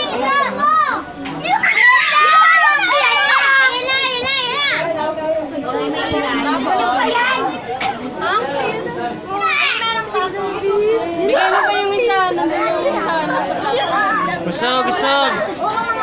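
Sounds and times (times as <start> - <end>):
chatter of girls' voices: 0.0 - 16.0.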